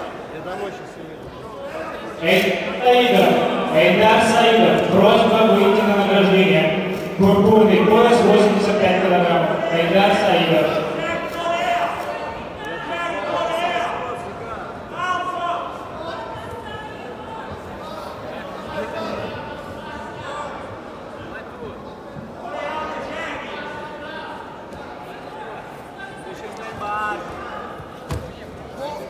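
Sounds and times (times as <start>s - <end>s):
arena crowd hubbub: 0.0s - 29.0s
echoing public address announcer: 2.2s - 17.0s.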